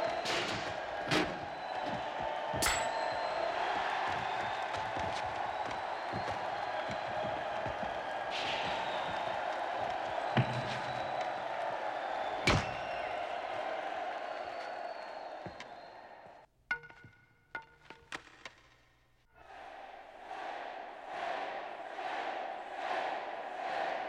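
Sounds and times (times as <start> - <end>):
crowd shouting and cheering: 0.0 - 16.5, 19.4 - 24.0.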